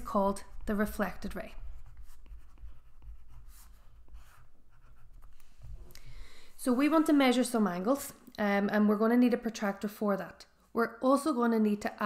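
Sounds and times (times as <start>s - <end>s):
pencil scratching on paper: 0.0s - 5.8s.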